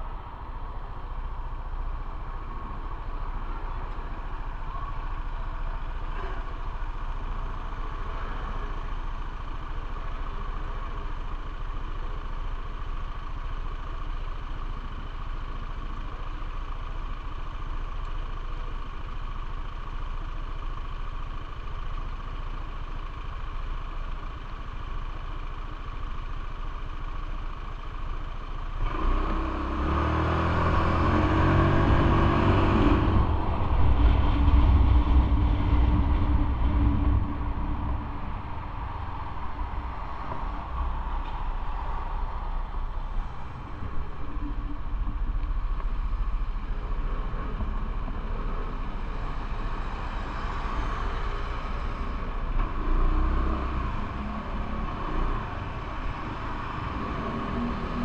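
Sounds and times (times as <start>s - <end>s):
motorbike engine idling and revving: 0.0s - 58.0s.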